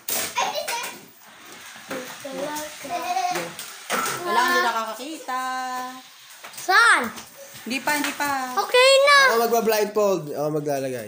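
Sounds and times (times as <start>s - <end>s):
child talking: 0.4s - 1.1s, 1.9s - 4.8s, 6.6s - 7.3s, 8.6s - 9.6s.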